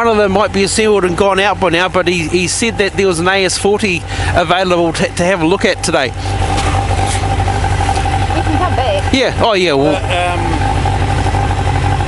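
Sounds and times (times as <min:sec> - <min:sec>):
motorcycle engine idling: 0:00.0 - 0:12.0.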